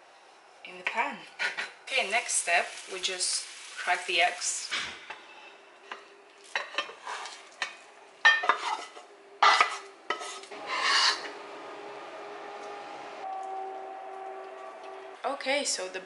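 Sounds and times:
wooden spatula scraping frying pan: 6.5s - 11.4s
steady hum: 9.0s - 16.0s.

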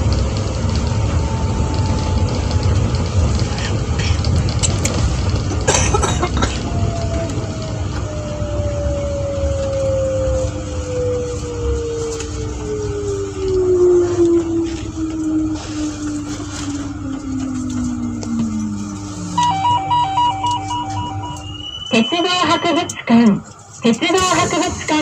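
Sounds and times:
electric traction motor whine: 0.0s - 25.0s
low running rumble: 0.0s - 25.0s
steady hum: 11.8s - 25.0s
short electronic beeps: 19.4s - 23.1s.

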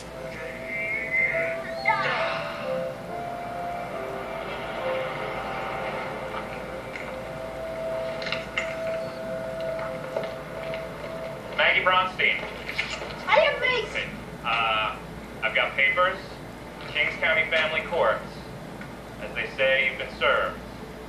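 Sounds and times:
sustained film music: 0.0s - 13.3s.

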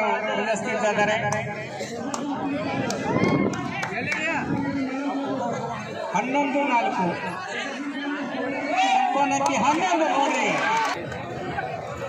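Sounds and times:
people chattering and calling out: 0.0s - 12.0s.

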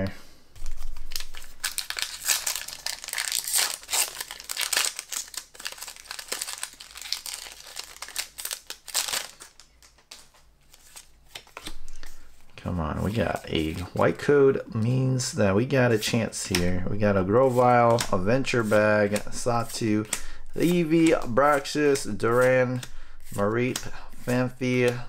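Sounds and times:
foil wrapper crinkling and tearing: 0.6s - 11.0s.

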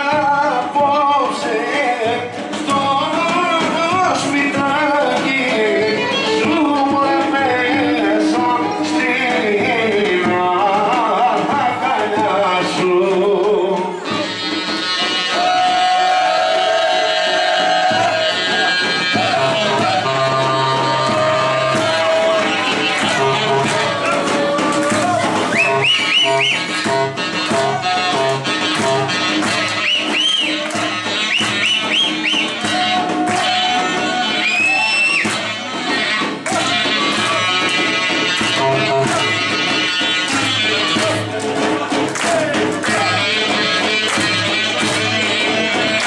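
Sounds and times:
live folk dance band music: 0.0s - 46.0s
high swooping lead melody: 18.6s - 33.0s.

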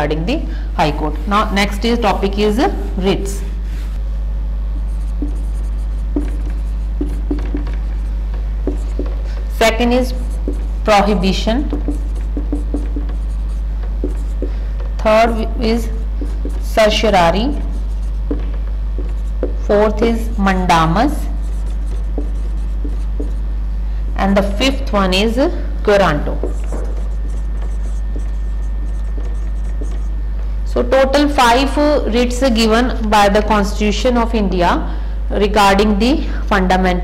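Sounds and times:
steady low hum: 0.0s - 37.0s
marker squeaking on whiteboard: 4.8s - 20.4s, 21.1s - 23.4s, 26.2s - 30.2s.

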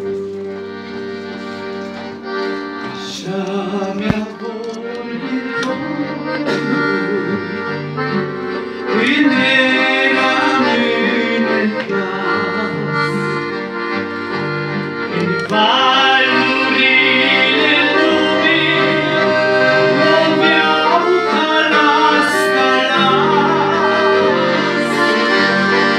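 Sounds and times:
accordion playing slow tune: 0.0s - 25.9s.

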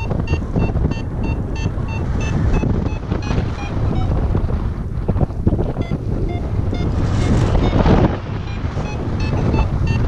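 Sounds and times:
variometer short beeps: 0.0s - 4.3s, 5.7s - 10.0s
airflow buffeting microphone: 0.0s - 10.0s.

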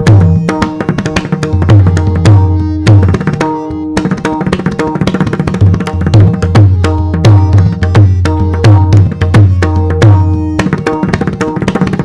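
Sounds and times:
barrel drum playing fast: 0.0s - 12.0s.

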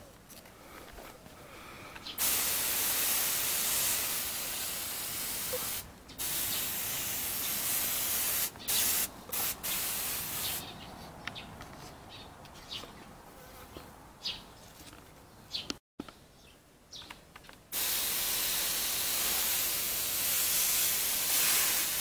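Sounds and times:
pressure sprayer hissing: 2.2s - 10.6s, 17.8s - 22.0s.

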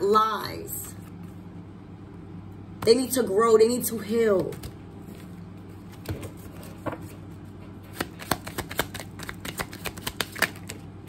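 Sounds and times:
cards being shuffled: 4.5s - 10.8s.

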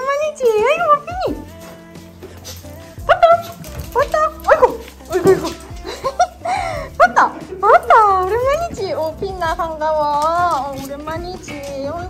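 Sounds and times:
soft background music: 0.0s - 12.0s
small dogs whining and yipping: 2.4s - 5.9s.

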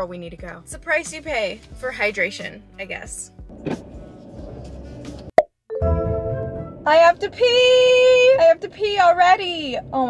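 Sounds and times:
car cabin rumble: 3.5s - 5.3s
music with held notes: 5.7s - 6.8s.

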